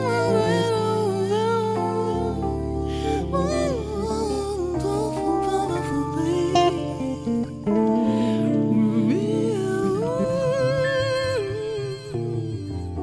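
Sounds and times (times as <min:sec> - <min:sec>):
jazz-funk band music: 0:00.0 - 0:10.7
sliding lead melody: 0:00.0 - 0:13.0.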